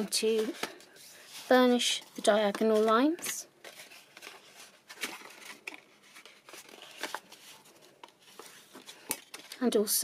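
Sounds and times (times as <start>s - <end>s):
card crackling: 0.2s - 9.6s
card rustling and scraping: 0.2s - 9.7s.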